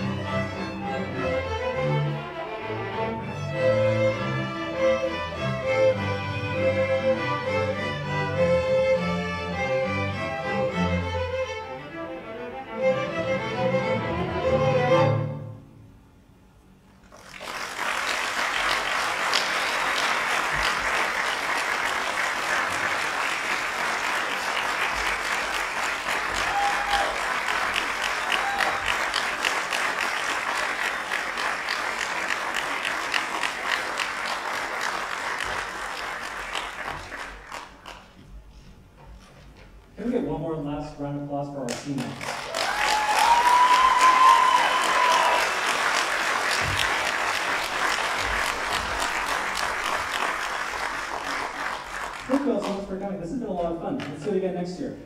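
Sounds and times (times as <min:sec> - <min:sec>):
string orchestra playing: 0:00.0 - 0:15.9
audience applauding: 0:17.0 - 0:38.2, 0:41.7 - 0:53.0.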